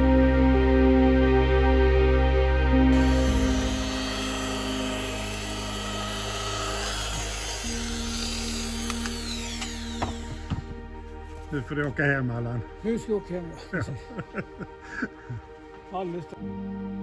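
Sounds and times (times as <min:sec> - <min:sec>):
background music: 0:00.0 - 0:17.0
electric polisher whirring: 0:02.9 - 0:10.9.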